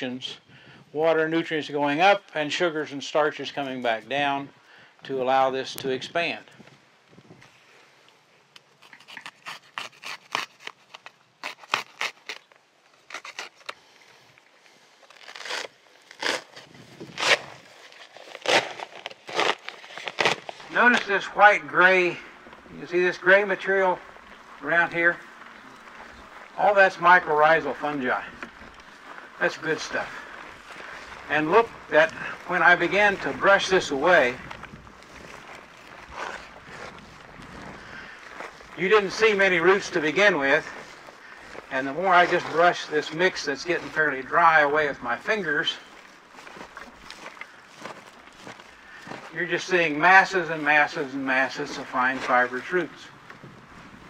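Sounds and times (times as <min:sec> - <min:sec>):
hand scraping fabric: 0:15.1 - 0:21.1.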